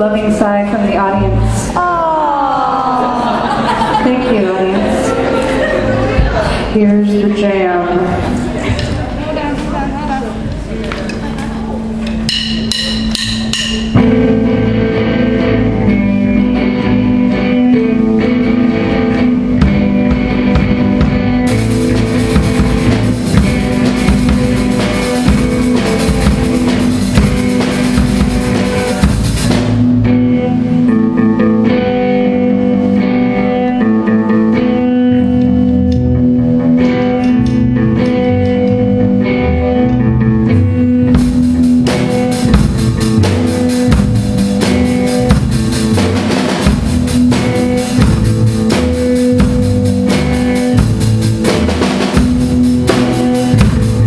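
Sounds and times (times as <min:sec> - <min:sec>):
rock band playing loud jam: 0:02.7 - 0:06.9, 0:11.0 - 0:54.0.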